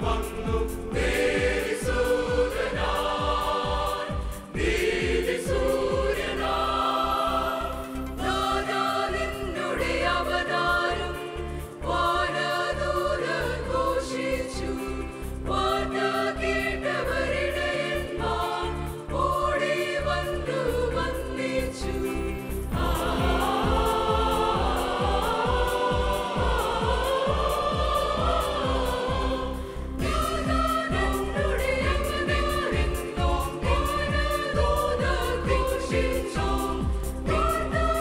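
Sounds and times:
low rhythmic pulse: 0.0s - 14.1s, 15.0s - 38.0s
choir singing in harmony: 0.0s - 38.0s.

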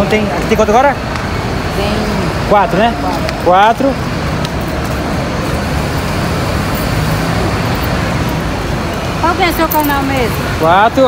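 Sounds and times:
buses running: 0.0s - 11.0s
road traffic din: 0.0s - 11.0s.

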